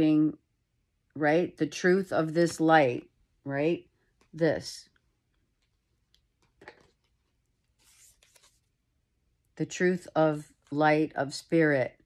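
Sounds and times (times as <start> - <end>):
cards rustling: 5.6 - 8.8.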